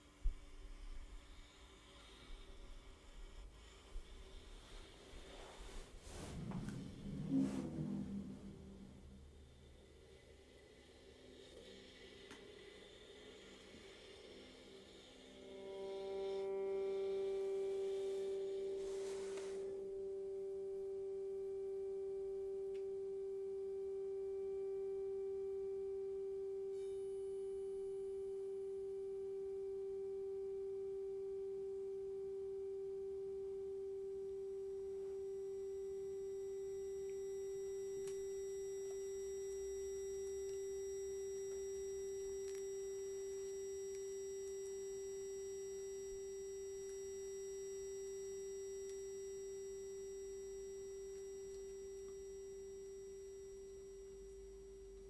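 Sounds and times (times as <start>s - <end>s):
pure tone drone: 3.3s - 55.0s.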